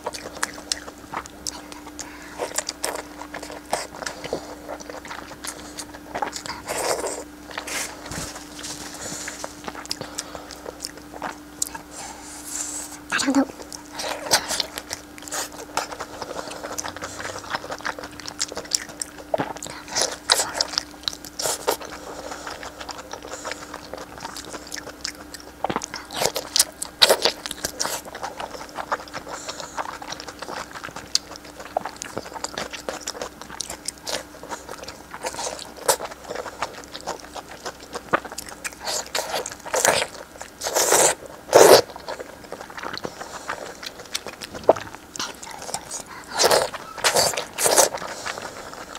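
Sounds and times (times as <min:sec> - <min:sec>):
biting and chewing meat: 0:00.0 - 0:48.9.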